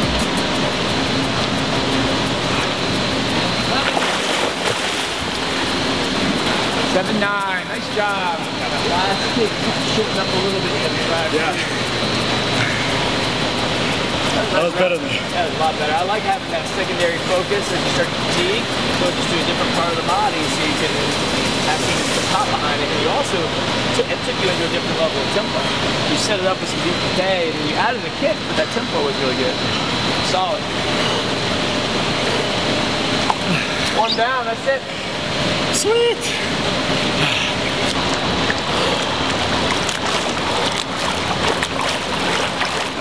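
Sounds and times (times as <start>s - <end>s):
echoing room noise: 0.0s - 43.0s
swimming pool water: 0.0s - 43.0s.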